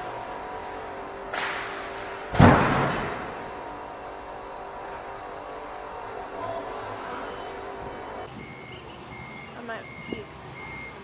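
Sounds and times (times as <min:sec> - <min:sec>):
forklift engine running: 0:00.0 - 0:11.0.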